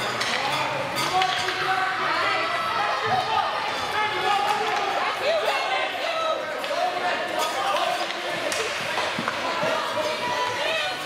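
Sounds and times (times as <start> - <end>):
spectators talking and calling out: 0.0 - 11.0
hockey sticks and puck knocking: 0.1 - 1.7, 6.6 - 10.6.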